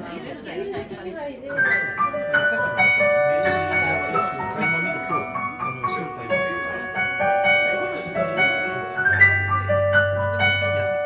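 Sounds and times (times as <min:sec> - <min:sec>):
keyboard sustained notes: 0:01.6 - 0:11.0.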